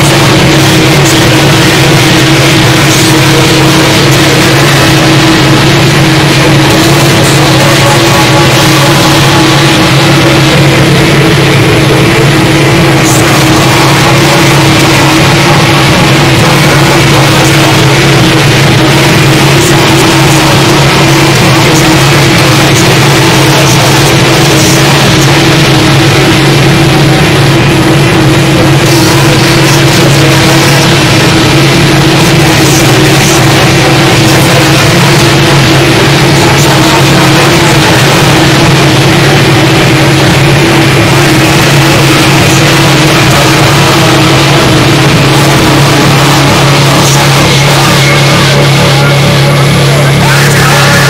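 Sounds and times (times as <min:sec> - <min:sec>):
distorted noise wall: 0:00.0 - 0:51.0
low drone: 0:00.0 - 0:51.0.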